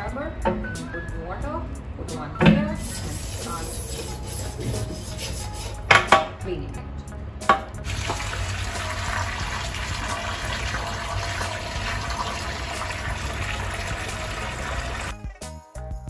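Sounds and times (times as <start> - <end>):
music: 0.0 - 16.0
water pouring from a hose: 7.8 - 15.1.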